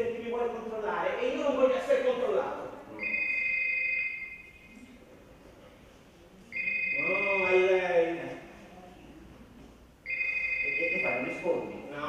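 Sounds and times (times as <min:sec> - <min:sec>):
telephone two-tone ring: 0:10.1 - 0:11.4.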